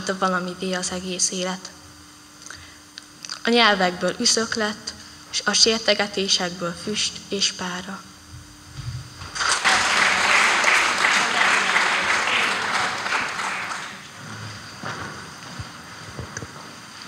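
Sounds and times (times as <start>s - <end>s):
audience applauding: 9.3s - 14.2s.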